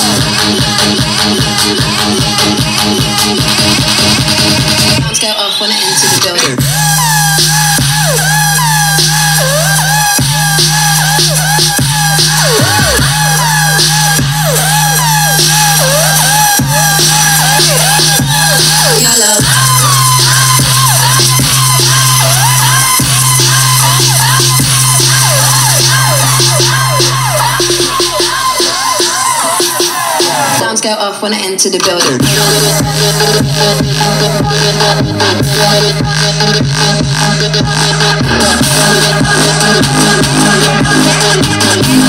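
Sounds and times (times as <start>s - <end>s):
electronic song with heavy bass: 0.0s - 42.0s.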